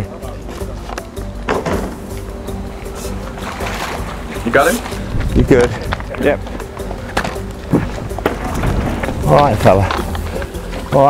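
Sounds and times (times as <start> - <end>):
background music held notes: 0.0 - 11.0.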